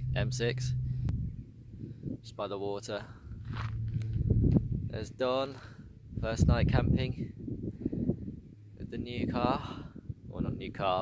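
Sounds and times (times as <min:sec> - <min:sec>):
footsteps on rough ground: 0:03.3 - 0:04.7.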